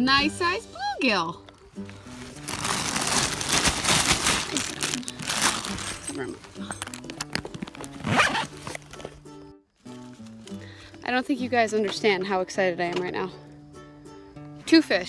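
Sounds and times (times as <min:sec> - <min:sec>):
background music: 0:00.0 - 0:15.0
plastic bag of ice crinkling: 0:01.9 - 0:08.9.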